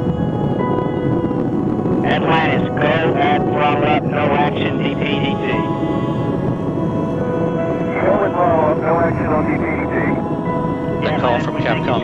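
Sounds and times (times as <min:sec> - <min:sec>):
background music: 0:00.0 - 0:12.0
rocket engines roaring: 0:00.0 - 0:12.0
indistinct radio voice: 0:02.0 - 0:05.7, 0:07.9 - 0:10.2, 0:11.0 - 0:12.0.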